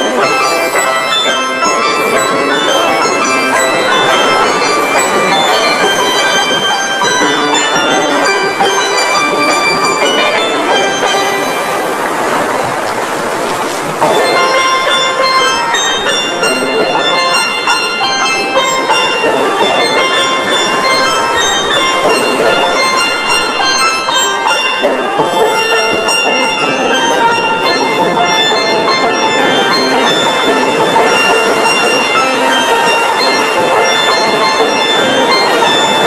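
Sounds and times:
steel band playing: 0:00.0 - 0:36.0.

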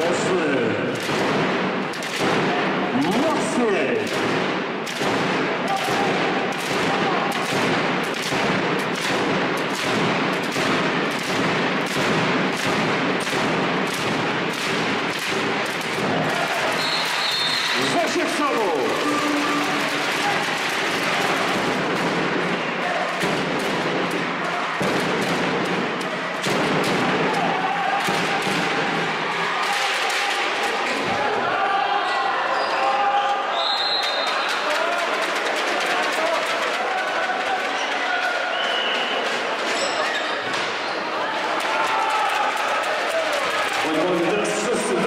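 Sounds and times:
crowd noise and shouting: 0:00.0 - 0:45.0.

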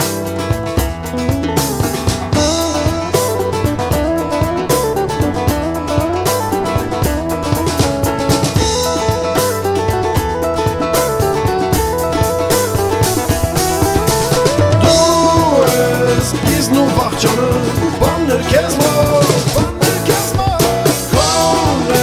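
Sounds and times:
bass guitar: 0:00.0 - 0:22.0
drum kit steady beat: 0:00.0 - 0:22.0
guitar: 0:00.0 - 0:22.0
gliding melody line: 0:01.1 - 0:18.4.

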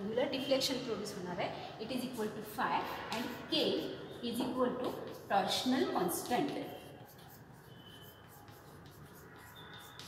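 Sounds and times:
chalk scratching on blackboard: 0:02.0 - 0:10.0
chalk squeak: 0:02.2 - 0:10.0.

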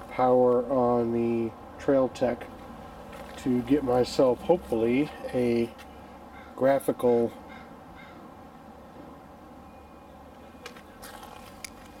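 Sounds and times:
rustle: 0:02.3 - 0:12.0.

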